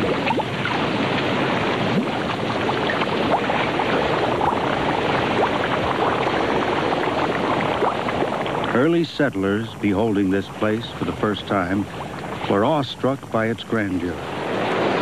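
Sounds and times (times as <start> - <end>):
mud bubbling: 0.0 - 15.0.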